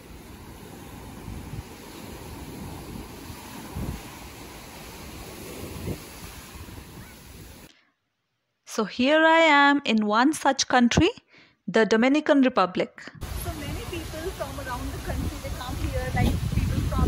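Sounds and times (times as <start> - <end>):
small surf breaking on beach: 0.0 - 7.7, 13.2 - 17.0
wind buffeting microphone: 0.0 - 7.7, 13.2 - 17.0.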